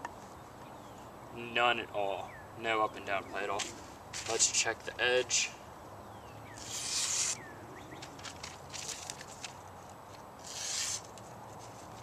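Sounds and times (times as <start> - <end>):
knife slicing paper: 6.6 - 7.4, 10.4 - 11.1.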